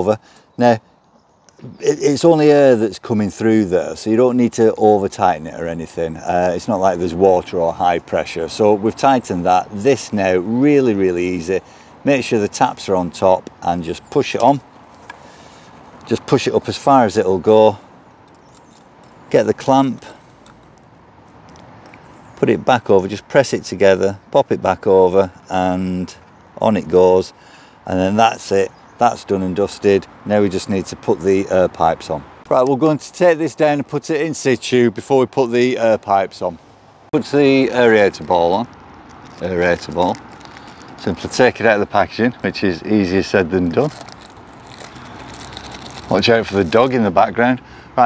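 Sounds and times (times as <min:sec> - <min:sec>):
steady background hiss: 0:00.0 - 0:48.0
plastic packaging crinkling: 0:37.5 - 0:41.7, 0:43.2 - 0:47.0.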